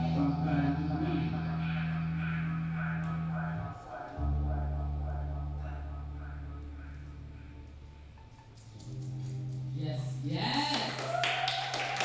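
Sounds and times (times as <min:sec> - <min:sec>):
held low music note: 0:00.0 - 0:10.4
audience clapping and cheering: 0:10.6 - 0:12.0.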